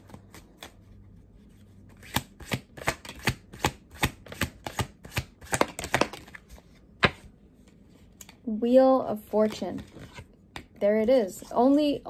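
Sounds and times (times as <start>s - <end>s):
cards being shuffled: 0.0s - 8.4s.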